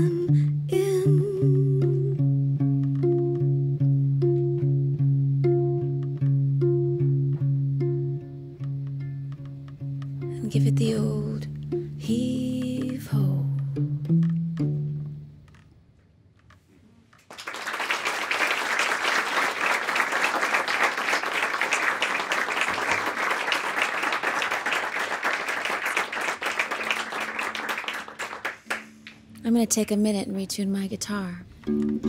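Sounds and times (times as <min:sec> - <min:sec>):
audience applauding: 0:17.2 - 0:29.2
electric guitar notes ringing: 0:31.5 - 0:32.0.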